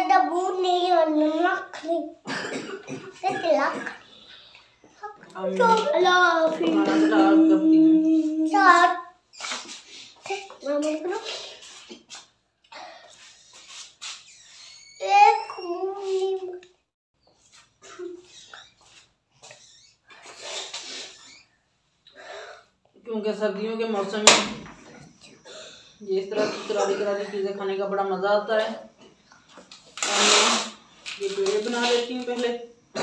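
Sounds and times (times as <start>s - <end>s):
indistinct voices talking: 5.0s - 9.0s.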